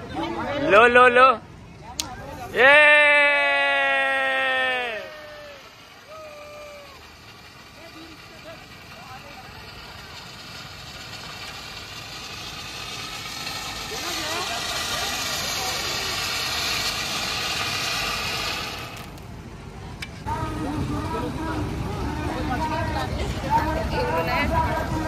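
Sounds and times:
firework fountain hissing: 0.0s - 25.0s
faint voices: 19.7s - 25.0s.

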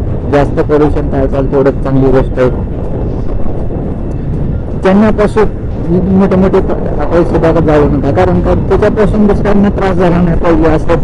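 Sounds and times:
wind and motorcycle engine noise: 0.0s - 11.0s
man speaking: 0.3s - 2.7s, 4.8s - 11.0s.

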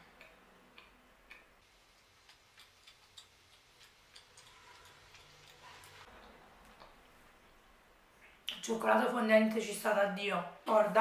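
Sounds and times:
soft chewing clicks: 0.0s - 7.0s.

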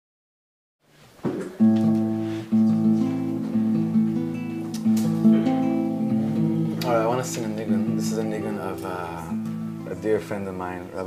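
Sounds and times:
acoustic guitar strumming chords: 1.5s - 11.0s.

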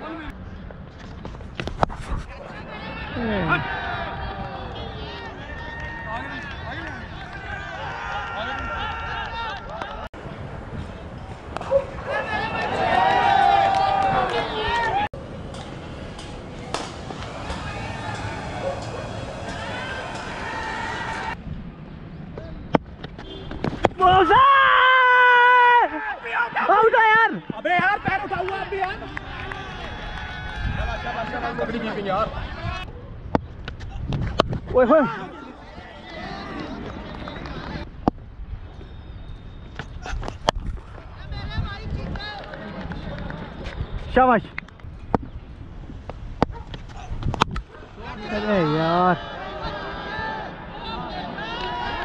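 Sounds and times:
wind rumble on camera: 0.3s - 12.2s, 29.2s - 31.6s, 32.2s - 35.0s, 36.5s - 48.0s
distant voices: 2.3s - 21.4s
players calling out: 11.5s - 15.1s, 16.6s - 21.4s.

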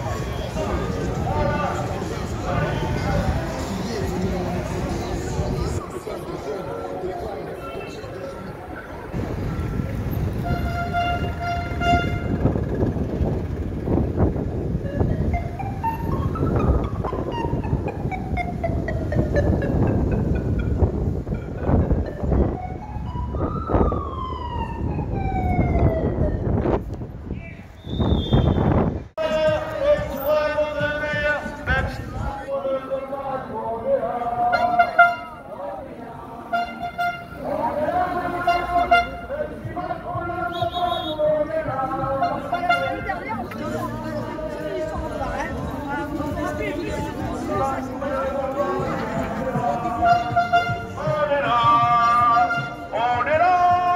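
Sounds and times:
street noise rumble: 0.0s - 53.9s
horn tooting: 6.6s - 13.3s, 34.2s - 44.5s, 47.6s - 53.9s
police siren wailing: 15.2s - 20.6s, 22.0s - 26.8s.

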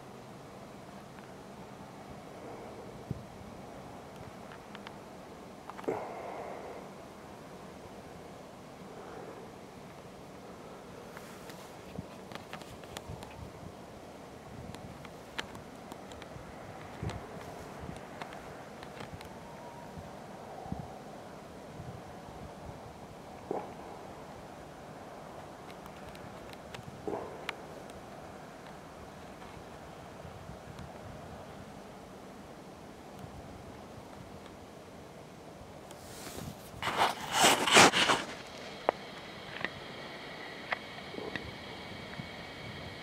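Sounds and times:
faint outdoor background noise: 0.0s - 43.0s
small clicks and rustles: 4.1s - 5.0s, 11.1s - 13.5s, 14.7s - 19.7s, 25.4s - 29.7s.

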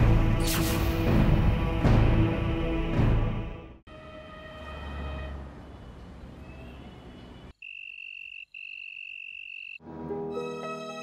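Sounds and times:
cricket-like trill: 7.5s - 9.8s.

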